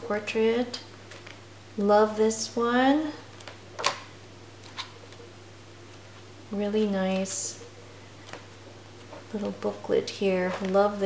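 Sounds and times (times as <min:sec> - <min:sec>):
book pages turning: 0:03.3 - 0:07.3, 0:08.2 - 0:11.0.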